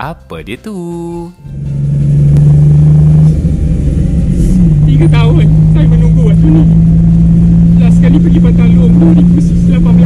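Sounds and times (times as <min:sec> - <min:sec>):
low road rumble: 0:00.8 - 0:10.0
van engine droning: 0:00.8 - 0:10.0.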